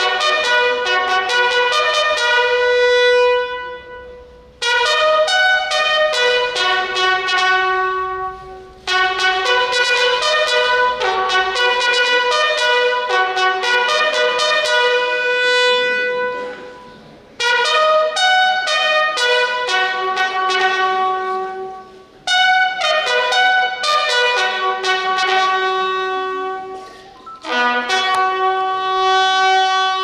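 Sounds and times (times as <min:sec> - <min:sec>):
bugle playing slow call: 0:00.0 - 0:30.0.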